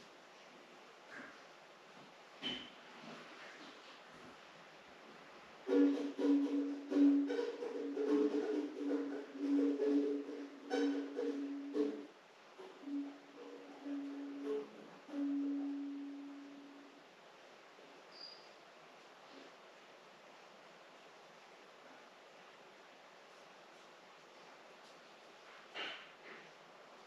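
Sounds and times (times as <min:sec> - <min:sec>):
plucked string instrument: 0:05.7 - 0:16.7.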